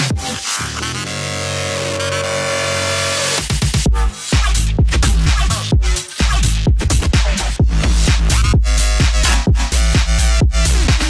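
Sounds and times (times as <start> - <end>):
sustained synth chord: 1.1 - 3.4
steady bass note: 1.8 - 11.0.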